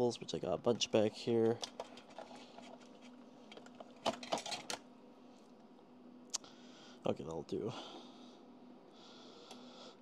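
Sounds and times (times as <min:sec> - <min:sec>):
faint hum: 0:00.0 - 0:10.0
cables rustling and clicking: 0:01.4 - 0:05.6.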